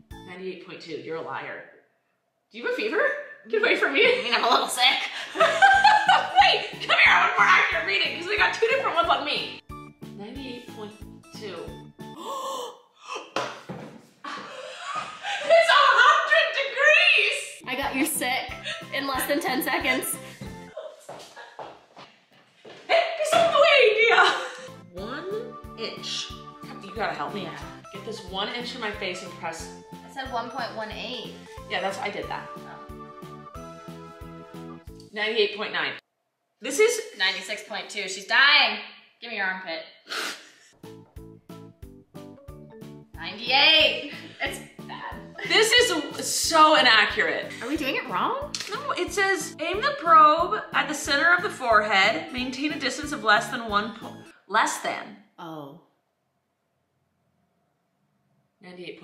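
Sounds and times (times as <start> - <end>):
bouncy plucked music over beat: 5.4 - 12.2, 17.6 - 20.8, 24.6 - 35.0, 40.8 - 54.3
woman gasping: 12.1 - 13.4
person breathy burst: 40.0 - 40.7.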